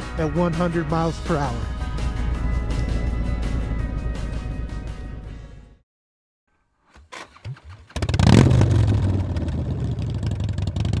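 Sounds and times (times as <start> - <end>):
motorcycle engine starting and idling: 6.9 - 11.0.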